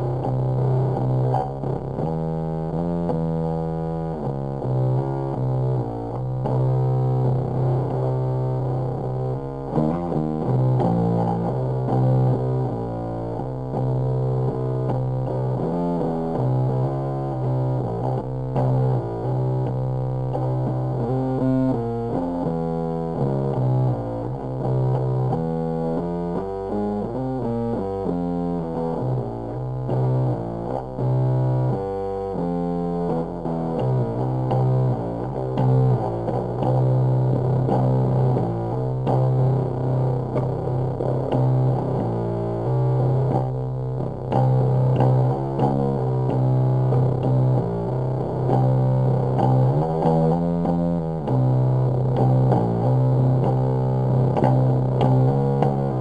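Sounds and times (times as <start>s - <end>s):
fuzzed electric bass riff: 0.0s - 56.0s.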